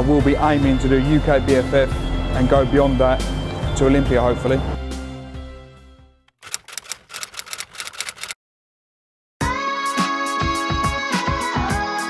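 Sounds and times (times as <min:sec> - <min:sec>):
typewriter key clicks: 0:06.4 - 0:08.4.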